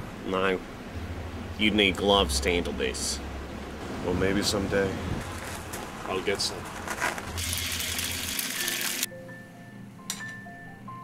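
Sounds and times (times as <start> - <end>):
egg sizzling in frying pan: 7.3 - 9.1.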